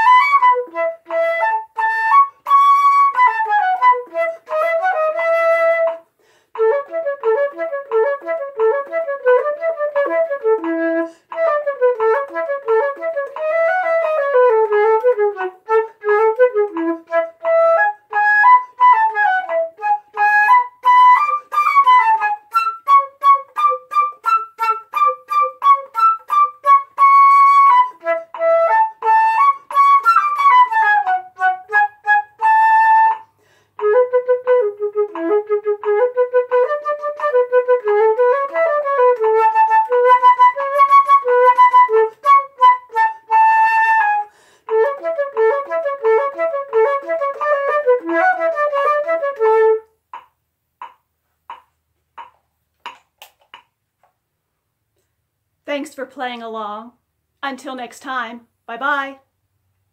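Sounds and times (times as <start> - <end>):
flute playing quick notes: 0.0 - 49.9.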